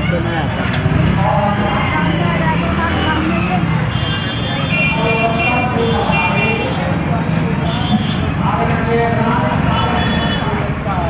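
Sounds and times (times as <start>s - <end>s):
crowd of people talking: 0.0s - 11.0s
motor vehicles: 0.0s - 11.0s.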